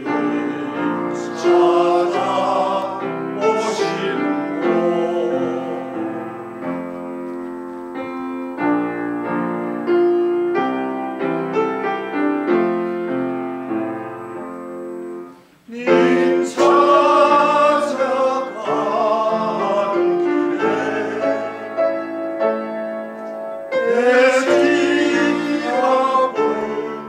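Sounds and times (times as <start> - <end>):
male vocal ensemble singing: 0.0 - 6.4, 15.7 - 22.2, 23.8 - 27.0
grand piano playing: 0.0 - 27.0.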